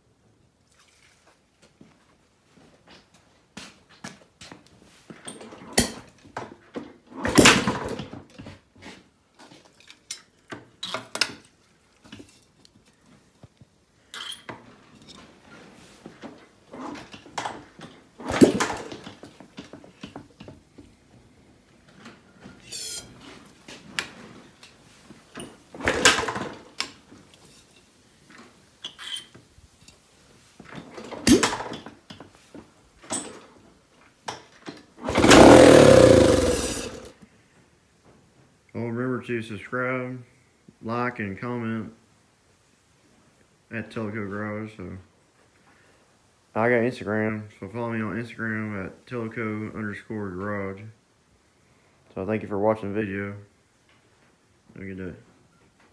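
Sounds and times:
engine kick-start clunks: 18.3s - 19.0s, 25.8s - 26.6s, 35.0s - 37.1s.

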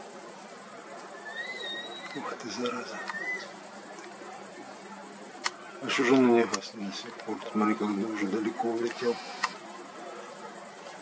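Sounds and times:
crickets chirping: 0.0s - 11.0s
faint thin whistling tone: 1.0s - 3.6s.

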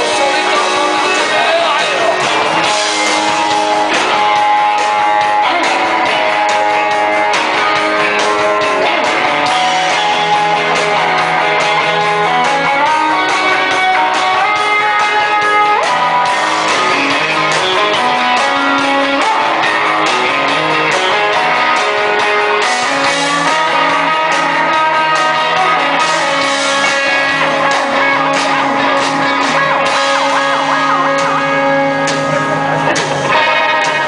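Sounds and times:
bass guitar: 0.0s - 34.0s
drums: 0.0s - 34.0s
electric guitar lead with bends: 0.0s - 34.0s.

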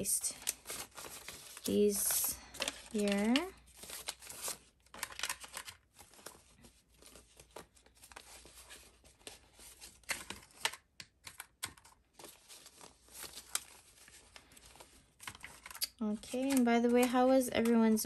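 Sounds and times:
banknotes rustling and crinkling: 0.0s - 18.0s.

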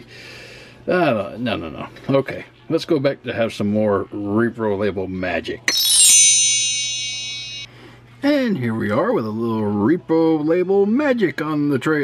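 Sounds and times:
shimmering chime: 5.7s - 7.7s.

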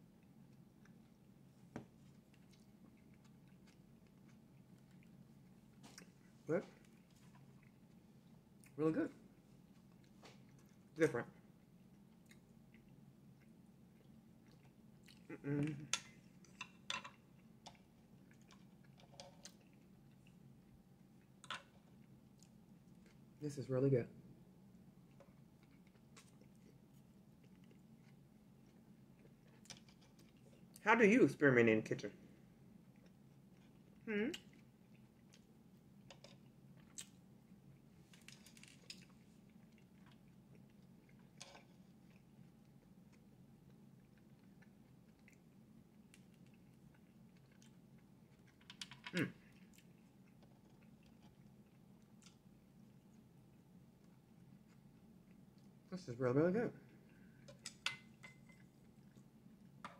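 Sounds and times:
quiet chewing: 0.0s - 23.4s, 24.5s - 30.8s, 32.2s - 56.0s, 56.8s - 59.9s
low steady hum: 0.0s - 59.9s.

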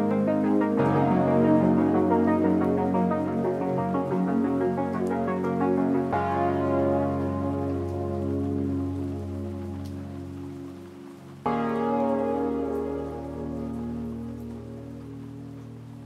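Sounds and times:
lofi chill chords: 0.0s - 16.0s.

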